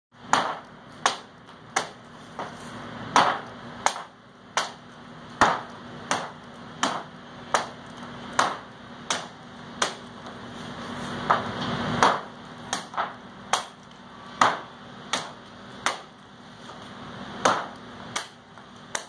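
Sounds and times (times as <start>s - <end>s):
hatchet chopping wood: 0.2s - 10.3s, 11.2s - 16.8s, 17.4s - 19.0s.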